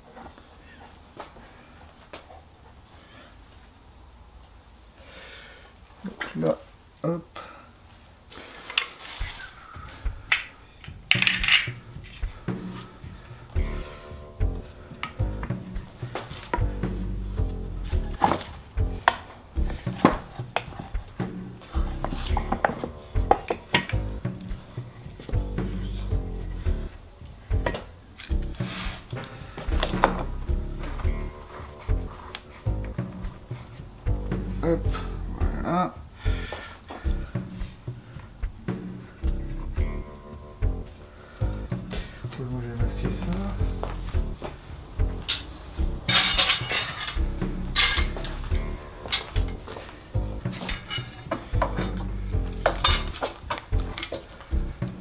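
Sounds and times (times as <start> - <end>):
background music: 9.0 - 55.0
clamp clicks and metallic clatter: 11.1 - 11.8, 46.1 - 47.2.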